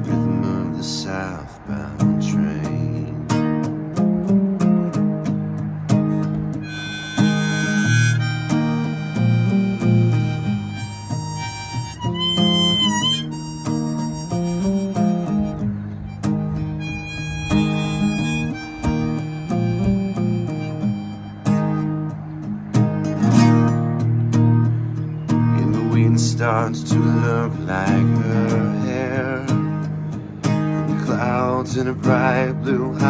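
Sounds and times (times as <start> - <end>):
strummed acoustic guitar: 0.0 - 33.0
harmonica solo: 6.6 - 22.4.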